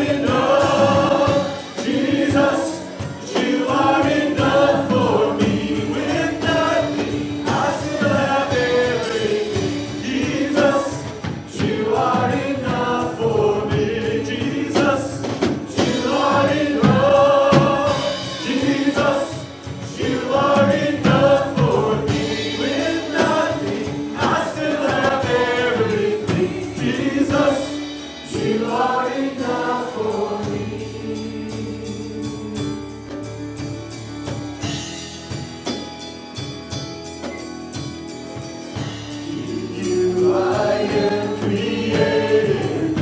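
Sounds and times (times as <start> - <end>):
drum kit: 0.0 - 43.0
keyboard: 0.0 - 43.0.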